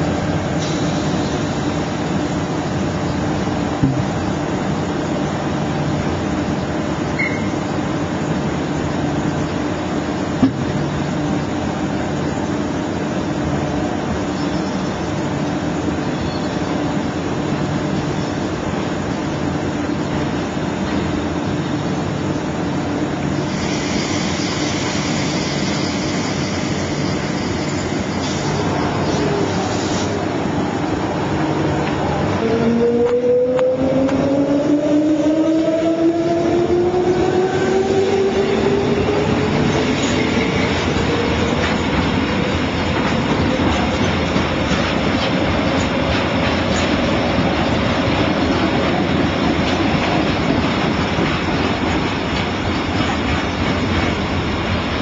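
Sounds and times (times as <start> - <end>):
electric train passing: 0.0 - 55.0
freight train rolling by: 0.0 - 55.0
rail and wheel noise: 0.0 - 55.0.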